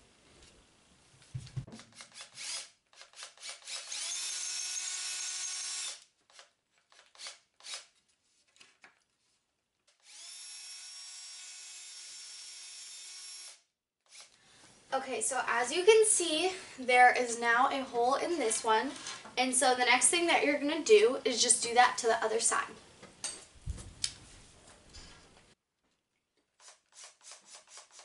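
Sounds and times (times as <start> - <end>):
cordless drill boring through wood: 1.8 - 7.9, 10.0 - 14.4.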